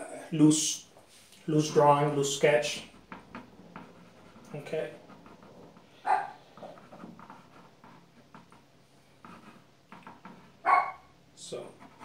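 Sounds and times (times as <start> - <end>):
drawing stick scratching canvas: 1.5 - 10.6, 11.6 - 12.0
dog barking: 6.0 - 6.4, 10.6 - 11.1.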